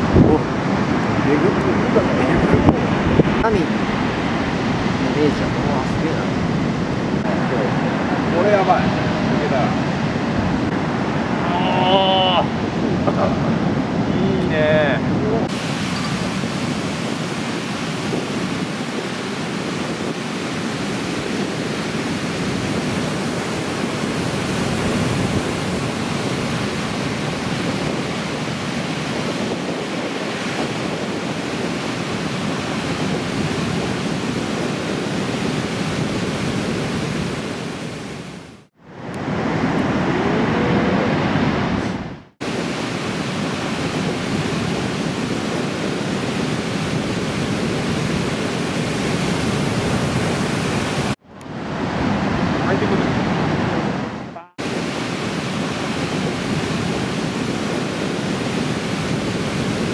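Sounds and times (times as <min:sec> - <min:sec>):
heavy ocean surf breaking: 0:00.0 - 0:59.9.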